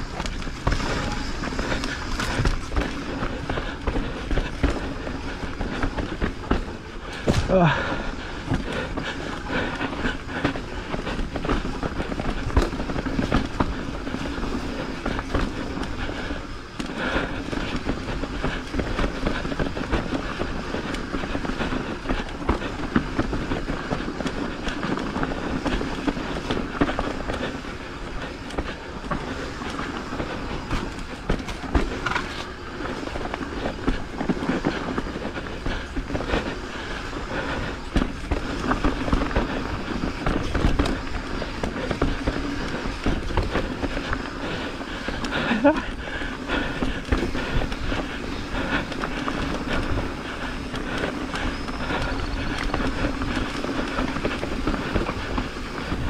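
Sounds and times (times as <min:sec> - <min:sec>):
bike rattling over bumps: 0:00.0 - 0:56.0
bike tyres rolling on dirt: 0:00.0 - 0:56.0.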